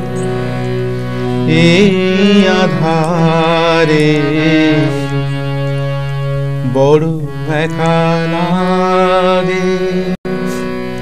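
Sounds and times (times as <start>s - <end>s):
harmonium chord: 0.0s - 11.0s
man singing: 1.4s - 5.3s, 6.6s - 10.7s.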